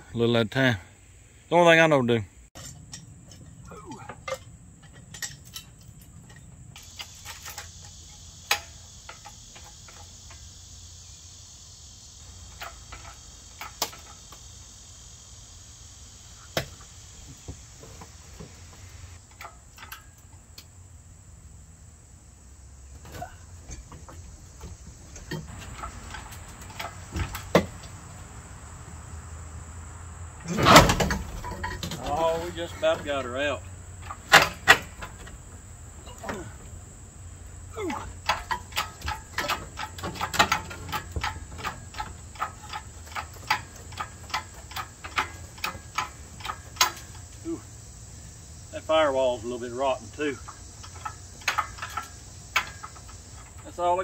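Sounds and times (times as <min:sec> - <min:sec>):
crickets chirring: 0:00.0 - 0:54.0
metal chain clinking: 0:02.6 - 0:10.5
loud metal clank: 0:30.4 - 0:35.4.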